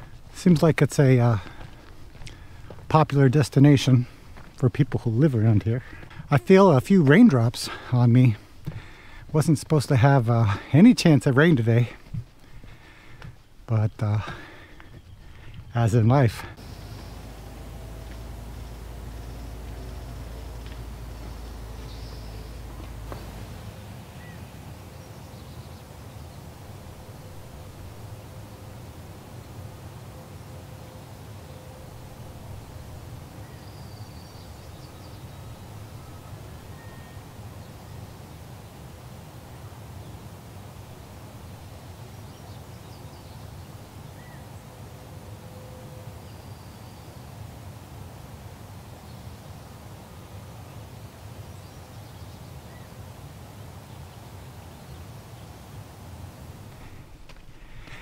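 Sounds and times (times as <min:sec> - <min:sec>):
bird calls: 0:12.0 - 0:38.5
low rumble: 0:16.5 - 0:25.2.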